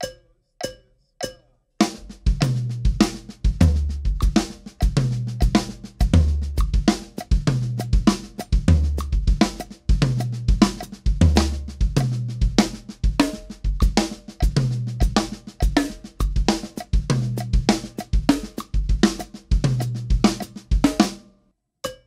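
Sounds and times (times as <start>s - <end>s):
count-in clicks: 0.0s - 1.5s.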